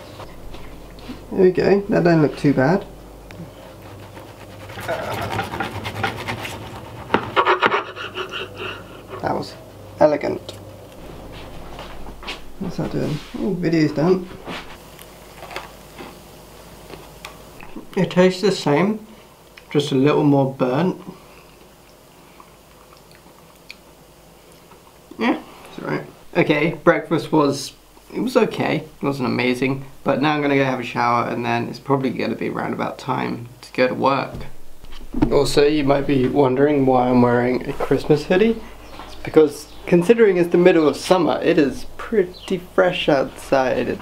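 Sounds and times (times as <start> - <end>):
food scraped on wooden board: 3.6 - 9.1
person chewing food: 21.6 - 23.8.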